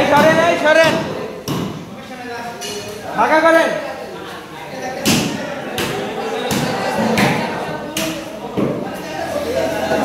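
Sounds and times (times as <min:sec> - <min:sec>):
heavy thumps echoing off concrete: 0:00.0 - 0:02.0, 0:05.0 - 0:09.0
men's voices: 0:00.0 - 0:10.0.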